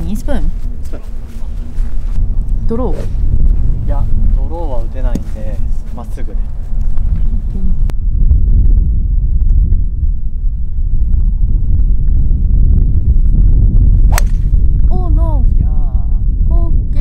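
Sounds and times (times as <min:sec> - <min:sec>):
wind buffeting microphone: 0:00.0 - 0:17.0
golf club striking ball: 0:14.1 - 0:14.5.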